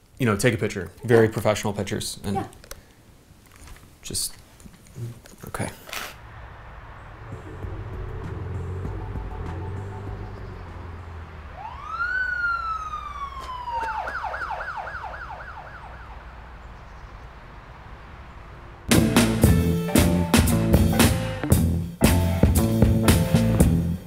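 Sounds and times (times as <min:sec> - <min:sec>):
street traffic rumble: 0:01.1 - 0:22.0
emergency vehicle siren: 0:06.4 - 0:16.8.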